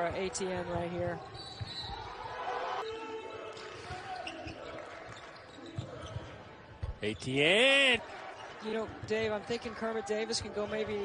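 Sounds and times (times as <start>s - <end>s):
low court noise: 0.0s - 11.0s.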